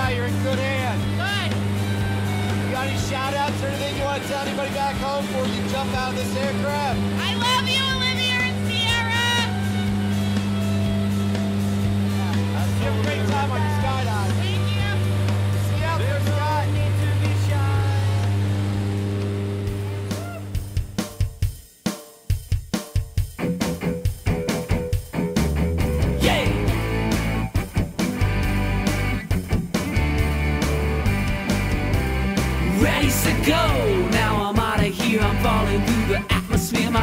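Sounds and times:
rock music with drum beat: 0.0 - 37.0
voices: 2.7 - 9.6.

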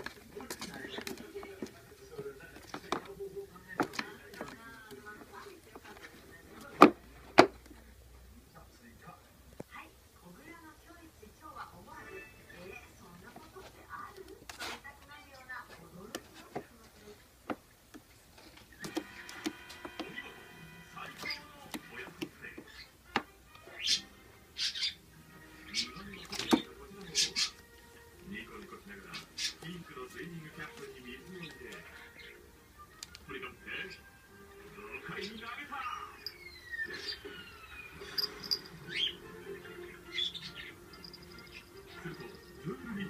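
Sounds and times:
kitten scratching in litter box: 13.3 - 15.1
small bell tinkling: 36.2 - 36.5, 38.0 - 38.8, 40.9 - 41.6.

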